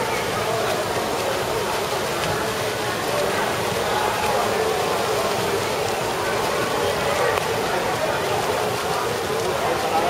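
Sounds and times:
swimmers splashing water: 0.0 - 10.0.

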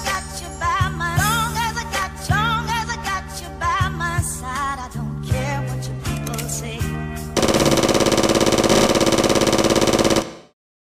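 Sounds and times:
rapid automatic gunfire: 7.4 - 10.6.

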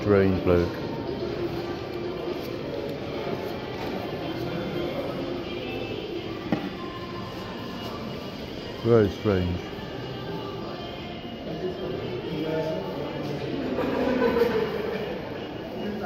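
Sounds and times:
faint background music: 0.0 - 16.0
murmur of distant voices: 0.0 - 16.0.

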